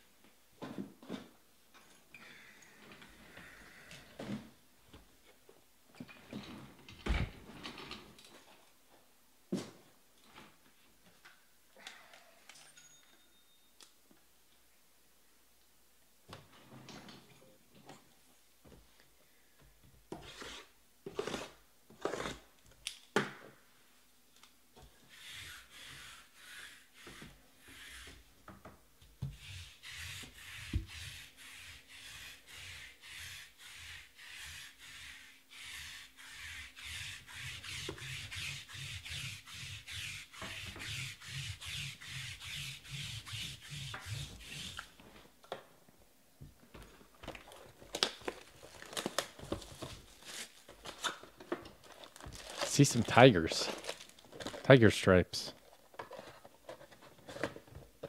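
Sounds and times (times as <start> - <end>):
lint roller rasping: 29.3 - 45.0
plastic rustle: 47.4 - 54.8.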